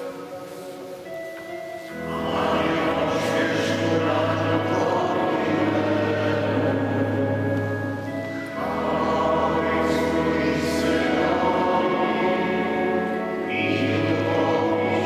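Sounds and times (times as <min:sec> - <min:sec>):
organ chords: 0:00.0 - 0:15.0
congregation singing a hymn: 0:01.9 - 0:15.0.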